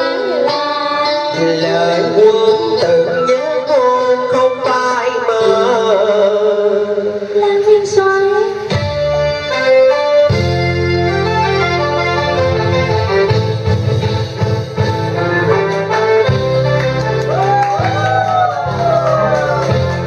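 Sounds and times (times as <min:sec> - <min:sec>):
person singing: 0:00.0 - 0:08.7
keyboard chords: 0:00.0 - 0:20.0.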